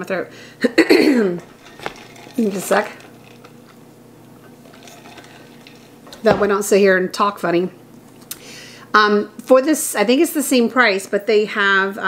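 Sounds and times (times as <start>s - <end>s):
sipping from a metal tumbler: 1.4s - 3.8s, 4.4s - 6.3s.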